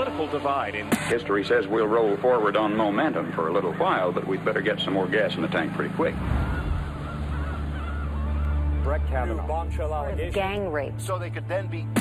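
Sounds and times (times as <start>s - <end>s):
flock of birds calling: 2.3s - 9.7s.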